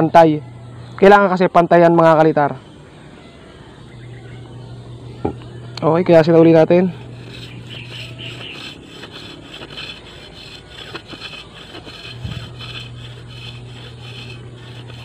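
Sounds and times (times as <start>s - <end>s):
knife scraping bamboo: 6.5s - 15.0s.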